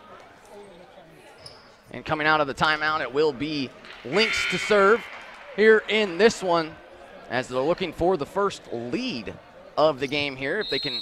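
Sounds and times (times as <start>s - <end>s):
faint voices of players: 3.2s - 11.0s.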